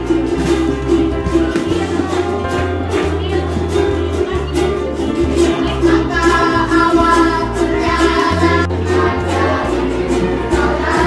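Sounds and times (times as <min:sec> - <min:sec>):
bass guitar low notes: 0:00.0 - 0:11.0
children singing: 0:00.0 - 0:11.0
strummed ukuleles: 0:00.0 - 0:11.0.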